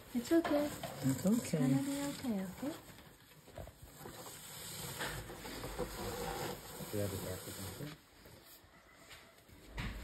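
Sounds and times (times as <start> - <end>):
sack brushing against cardboard: 5.8 - 8.0.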